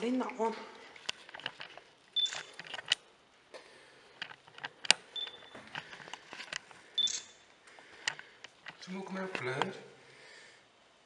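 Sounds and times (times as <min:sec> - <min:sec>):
camera short high beeps: 0:02.2 - 0:02.5, 0:07.0 - 0:07.3.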